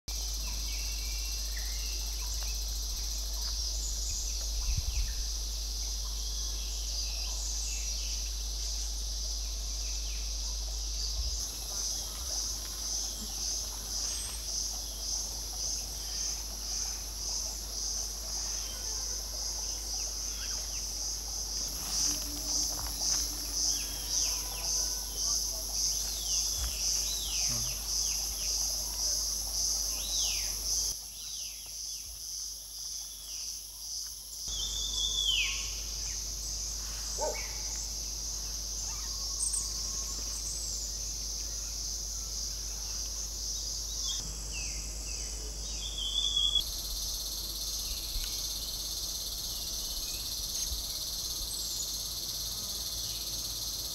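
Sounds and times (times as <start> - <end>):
cicadas shrilling: 0.1 - 53.9.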